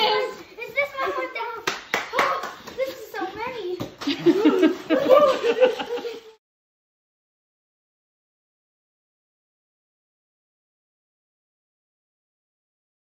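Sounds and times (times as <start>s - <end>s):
child laughing: 4.0s - 6.4s.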